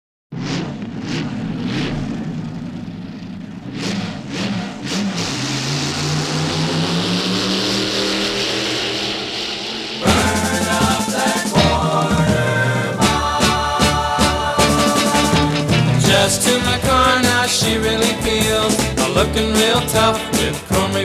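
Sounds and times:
car engine accelerating: 0:00.3 - 0:21.0
hot-rod engine throttle blips: 0:00.3 - 0:21.0.

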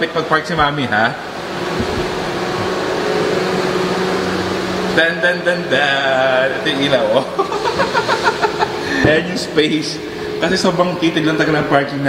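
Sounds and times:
car engine and cooling fan humming: 0:00.0 - 0:12.0.

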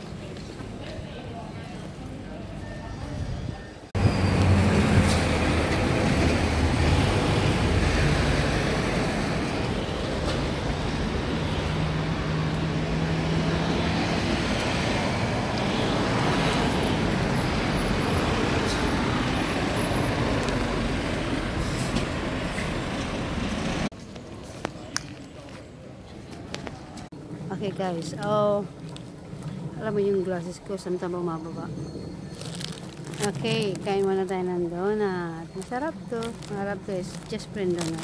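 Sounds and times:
heavy lorries and cars passing: 0:02.0 - 0:23.9.

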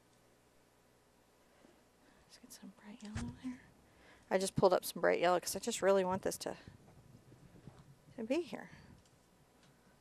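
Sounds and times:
faint whispering: 0:02.1 - 0:03.7.

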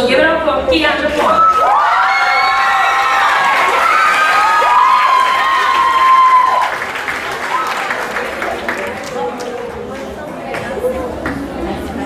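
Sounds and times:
high-pitched shouts: 0:01.3 - 0:06.8
audience applauding: 0:02.4 - 0:10.0.

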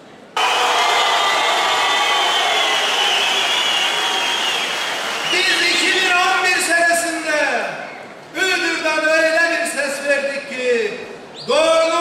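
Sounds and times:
crowd applauding and cheering: 0:00.4 - 0:06.0.

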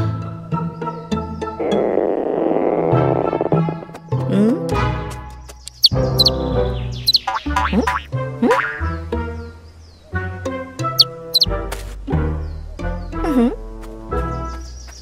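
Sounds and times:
bouncy cartoon music: 0:00.0 - 0:09.6, 0:10.2 - 0:15.0
short high chirps: 0:05.7 - 0:06.3, 0:07.1 - 0:07.3
boing sound effects: 0:07.2 - 0:08.9.

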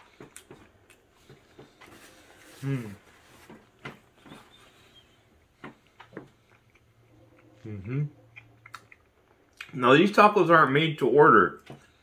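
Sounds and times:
quiet chewing: 0:00.0 - 0:09.8.

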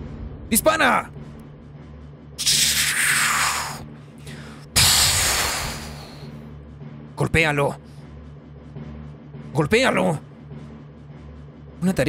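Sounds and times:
cannon shot hissing blast: 0:04.8 - 0:06.2.

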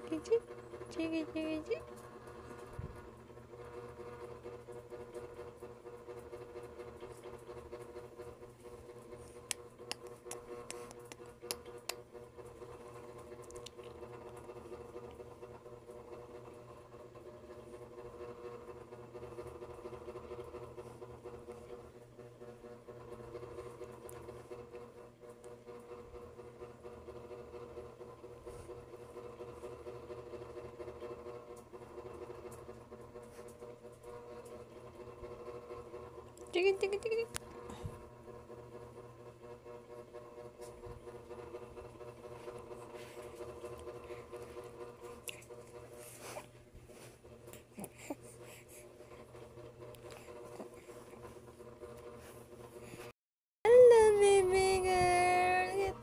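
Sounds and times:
faint mechanical hum: 0:00.0 - 0:56.0.

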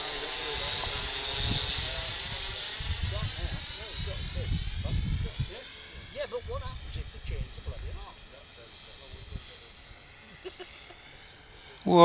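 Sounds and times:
low rumbling bursts: 0:00.0 - 0:10.5
high-pitched electric motor whine: 0:00.0 - 0:12.0.

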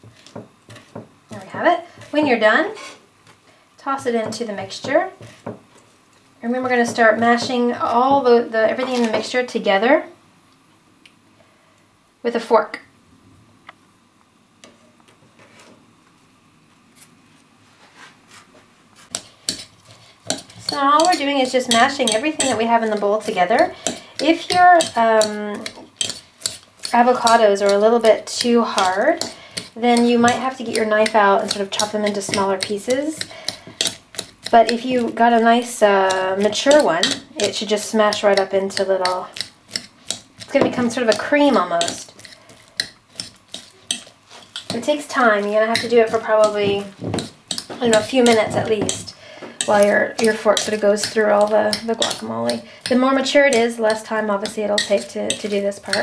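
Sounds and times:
knife and fork scraping bowl: 0:19.0 - 0:49.0, 0:49.6 - 0:56.0.

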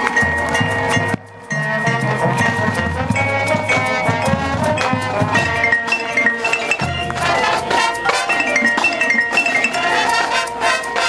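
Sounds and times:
mallet percussion notes: 0:00.0 - 0:11.0
marching band playing: 0:00.0 - 0:11.0.

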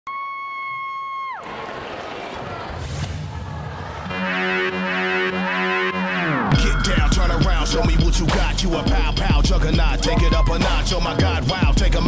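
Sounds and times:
crowd noise: 0:00.2 - 0:12.0
buzzy electronic tone diving in pitch: 0:04.1 - 0:07.9.

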